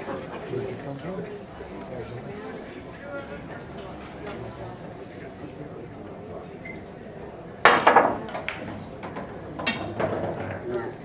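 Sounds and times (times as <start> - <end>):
billiard balls clacking: 7.6 - 10.9.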